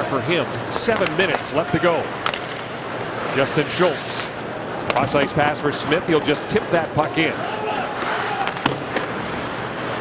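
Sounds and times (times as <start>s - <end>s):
arena crowd noise: 0.0s - 9.3s
stick striking puck: 0.7s - 3.2s, 4.2s - 5.2s, 8.4s - 9.2s.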